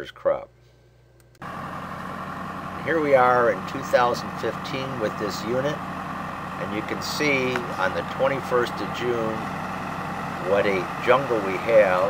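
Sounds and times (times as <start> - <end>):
tractor engine running: 1.4 - 12.0.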